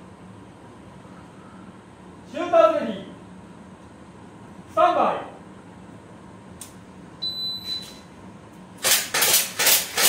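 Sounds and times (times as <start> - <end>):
shot timer beep: 7.2 - 8.0.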